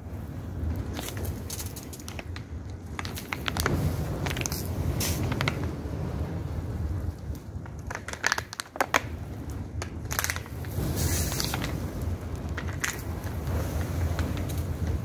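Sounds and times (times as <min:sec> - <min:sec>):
fire crackling and popping: 0:00.2 - 0:15.0
fire sharp snaps: 0:00.7 - 0:05.8, 0:07.1 - 0:15.0.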